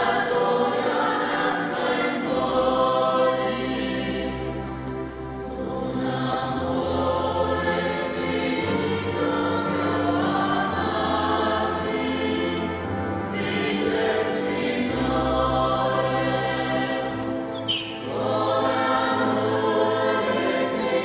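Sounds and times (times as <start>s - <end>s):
choir singing a hymn: 0.0s - 21.0s.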